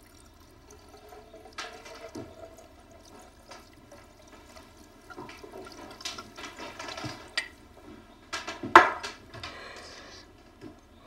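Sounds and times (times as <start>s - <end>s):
liquid pouring into glass bottle: 0.0s - 7.6s.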